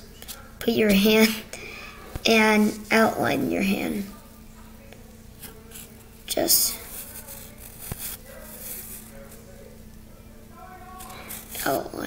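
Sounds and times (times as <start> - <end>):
marker scratching on paper: 6.6 - 9.1.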